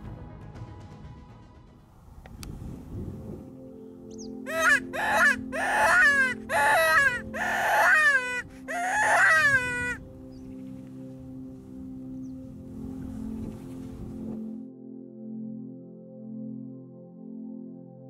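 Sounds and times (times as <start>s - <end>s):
background music: 0.0s - 18.0s
roe deer call whining cries: 4.5s - 10.0s.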